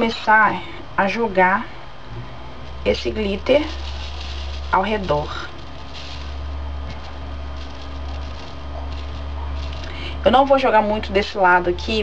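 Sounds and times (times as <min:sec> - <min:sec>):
steady low hum: 0:00.0 - 0:12.0
glitter sprinkling: 0:02.6 - 0:11.4.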